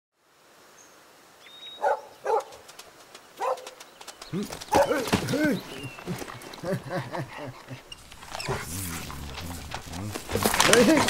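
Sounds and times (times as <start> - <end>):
dog barking: 1.8 - 2.6, 3.4 - 3.8, 4.7 - 5.3.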